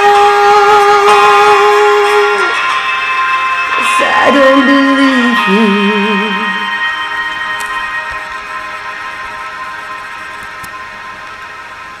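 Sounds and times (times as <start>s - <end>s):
backing track chord ringing: 0.0s - 12.0s.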